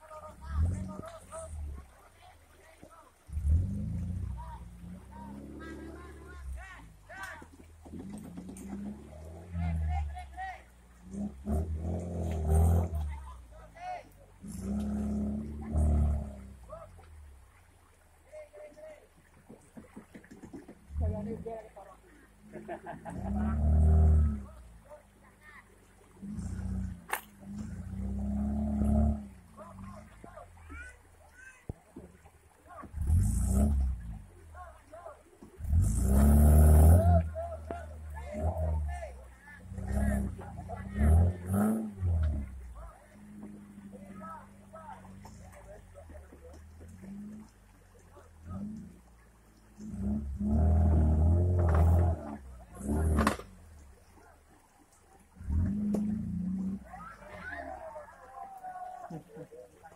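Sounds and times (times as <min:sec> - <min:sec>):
off-road engine revving hard: 0:00.0 - 0:01.8, 0:03.2 - 0:16.8, 0:22.4 - 0:25.5, 0:26.1 - 0:30.9, 0:32.8 - 0:53.8, 0:55.4 - 0:57.9.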